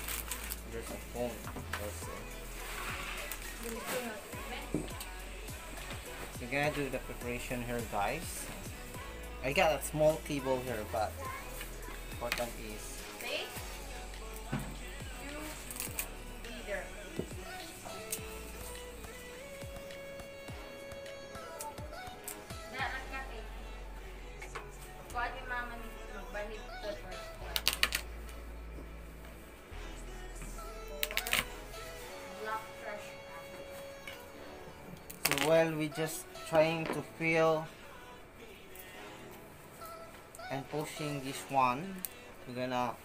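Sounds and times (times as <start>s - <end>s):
background music: 0.0s - 43.0s
voices in the room: 0.0s - 43.0s.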